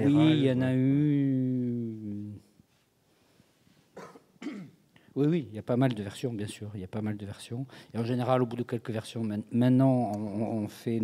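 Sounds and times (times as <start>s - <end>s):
man coughing: 4.0s - 4.8s.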